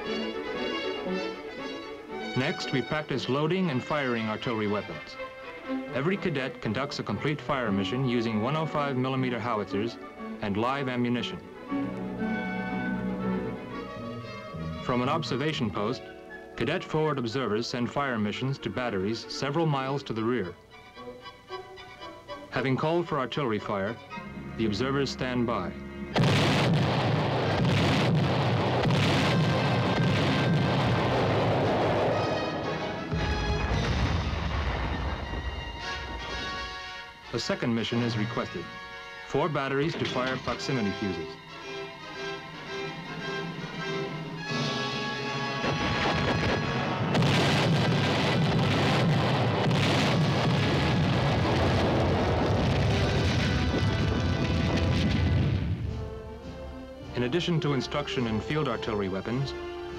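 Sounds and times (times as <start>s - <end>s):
film score music: 0.0s - 59.9s
shells bursting: 26.1s - 37.2s, 42.5s - 56.0s
artillery booms: 26.2s - 36.8s, 44.5s - 55.9s.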